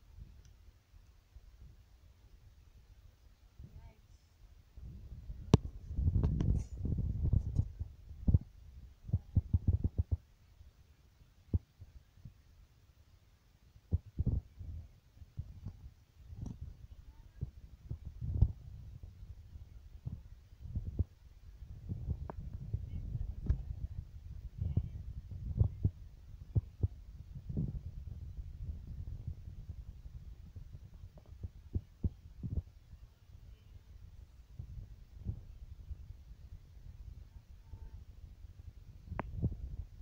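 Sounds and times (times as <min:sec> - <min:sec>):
microphone handling rumble: 0:04.8 - 0:10.2, 0:13.9 - 0:32.8, 0:33.5 - 0:40.0
low dull thumps: 0:13.9 - 0:19.4, 0:20.0 - 0:32.8, 0:38.6 - 0:40.0.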